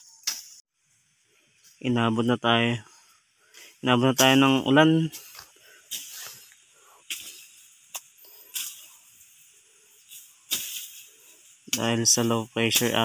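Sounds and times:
machete swishing through brush: 0:00.0 - 0:00.6, 0:05.1 - 0:12.0.

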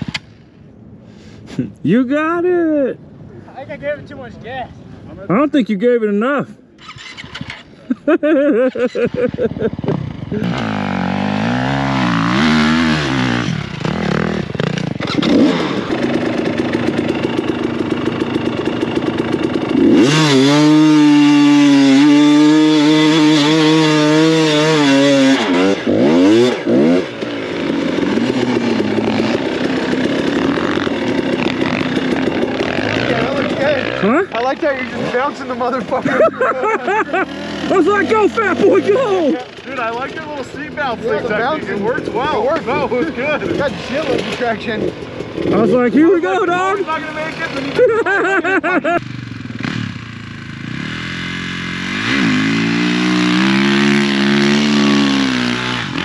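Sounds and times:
dirt bike engine revving: 0:06.8 - 0:56.0.

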